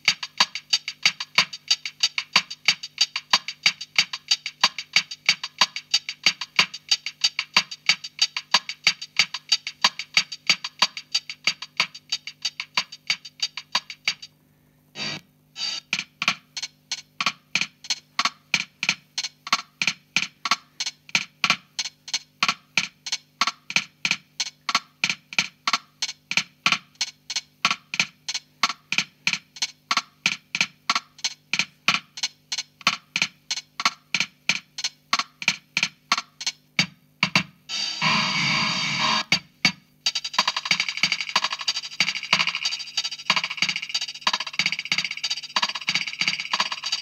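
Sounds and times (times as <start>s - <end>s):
drum machine bossa nova rhythm: 0.0s - 14.3s, 15.0s - 47.0s.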